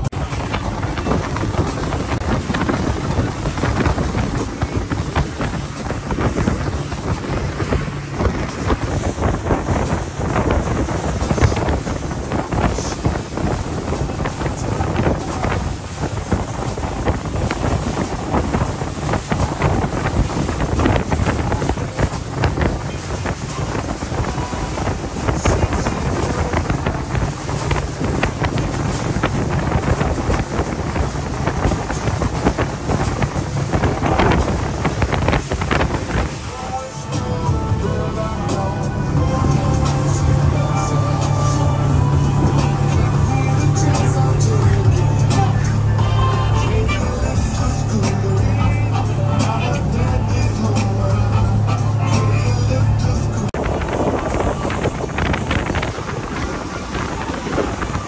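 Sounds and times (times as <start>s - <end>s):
boat engines droning: 0.0s - 58.0s
water rushing along hull: 0.0s - 58.0s
wind buffeting microphone: 0.0s - 58.0s.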